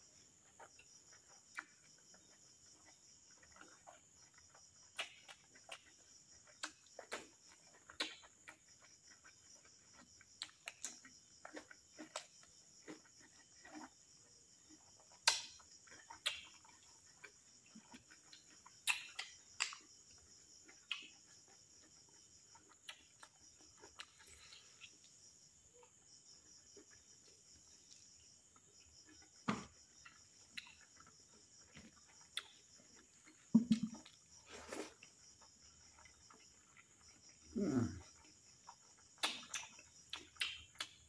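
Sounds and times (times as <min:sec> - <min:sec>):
crickets chirring: 0:00.0 - 0:41.0
chewing and lip smacks: 0:00.1 - 0:41.0.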